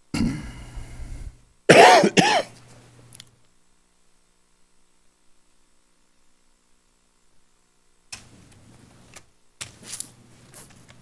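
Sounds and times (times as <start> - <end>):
person clearing throat: 0.1 - 0.6, 1.7 - 2.6
person coughing: 0.1 - 0.6, 1.7 - 2.6.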